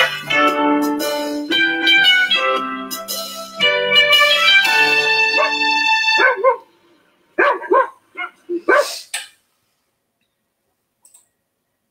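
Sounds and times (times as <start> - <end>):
guitar music: 0.0 - 6.6
dog barking: 5.4 - 5.6, 6.2 - 6.7, 7.4 - 9.0.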